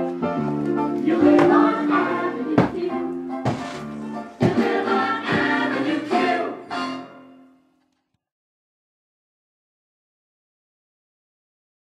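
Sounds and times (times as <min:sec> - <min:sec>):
song with singing over a beat: 0:00.8 - 0:03.7, 0:04.3 - 0:06.8.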